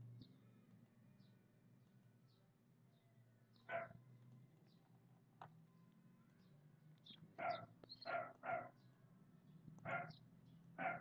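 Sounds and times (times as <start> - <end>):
dog barking: 3.7 - 4.0, 7.4 - 8.8, 9.9 - 10.2, 10.8 - 11.0.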